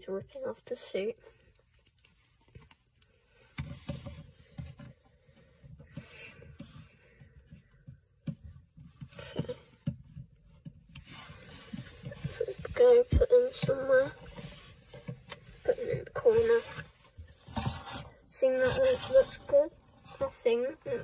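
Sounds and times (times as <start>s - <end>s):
plastic toy handling knocks and scrapes: 3.4s - 21.0s.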